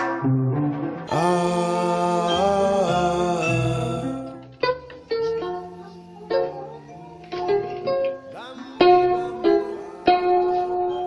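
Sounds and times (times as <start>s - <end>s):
plucked string melody: 0.0s - 11.0s.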